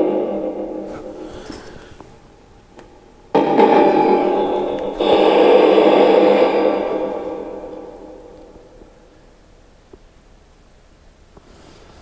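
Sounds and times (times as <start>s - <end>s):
harsh echoing electronic noise: 0.0s - 1.4s, 2.8s - 9.3s.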